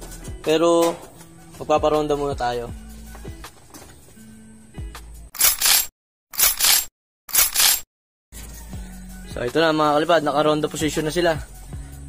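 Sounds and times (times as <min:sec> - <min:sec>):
quiet background music: 0:00.0 - 0:05.3, 0:08.4 - 0:12.0.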